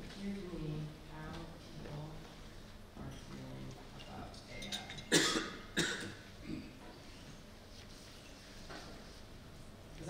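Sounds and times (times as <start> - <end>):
woman coughing: 5.0 - 6.8.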